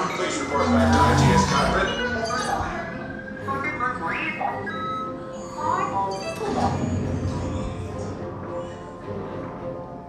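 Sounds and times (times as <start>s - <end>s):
crowd chatter: 0.0s - 3.0s
background music: 0.0s - 10.0s.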